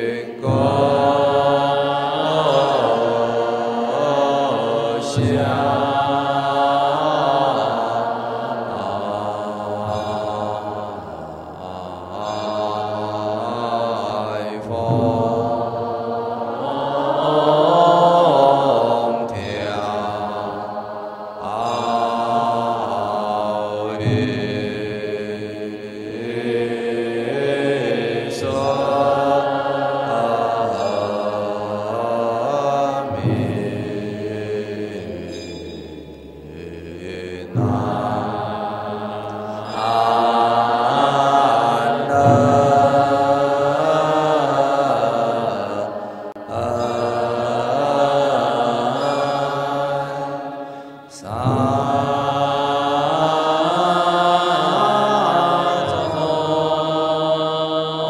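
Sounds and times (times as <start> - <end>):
monks chanting in unison: 0.0 - 58.0
sharp percussive strikes: 21.4 - 57.3.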